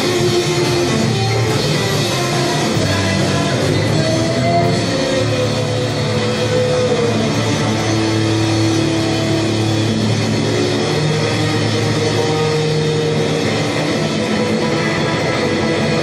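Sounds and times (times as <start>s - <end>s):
bass guitar: 0.0s - 16.0s
drum kit played with sticks: 0.0s - 16.0s
electric guitar long held notes: 0.0s - 16.0s.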